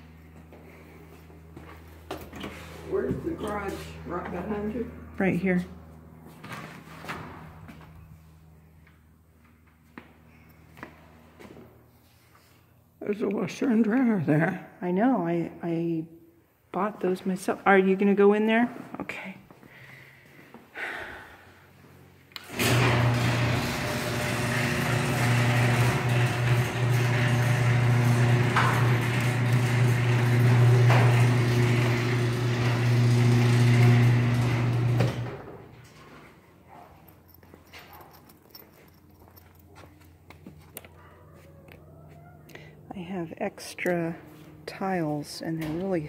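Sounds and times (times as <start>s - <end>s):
garage door motor hum: 0.0s - 11.9s, 22.0s - 43.1s.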